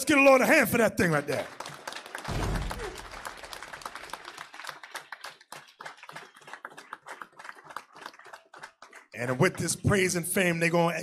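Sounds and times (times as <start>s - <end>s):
small group applauding: 1.0s - 9.9s
low thud: 2.3s - 3.1s.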